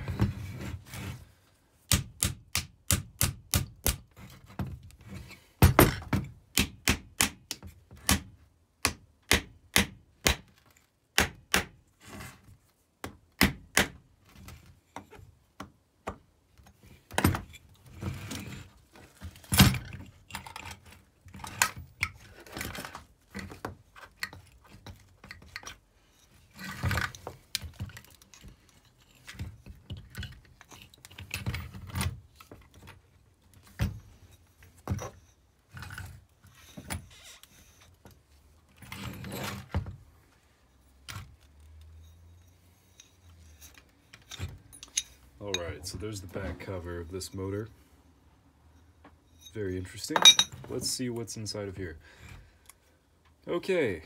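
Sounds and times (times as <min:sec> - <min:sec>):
tools knocking and scraping metal: 0:42.9 - 0:45.9, 0:49.0 - 0:50.9.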